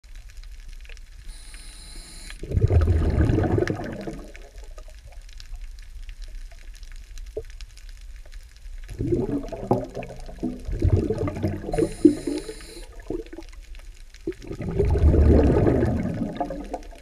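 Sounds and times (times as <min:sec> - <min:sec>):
faint clicks: 0:00.1 - 0:02.5
muffled underwater water rush: 0:00.1 - 0:17.0.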